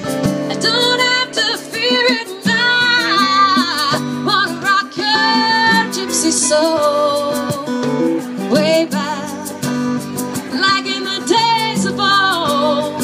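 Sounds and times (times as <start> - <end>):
electric guitar: 0.0 - 13.0
strummed acoustic guitar: 0.0 - 13.0.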